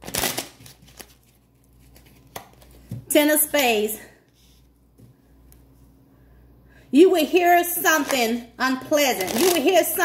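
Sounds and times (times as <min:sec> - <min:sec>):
playing cards shuffling: 0:00.0 - 0:02.8.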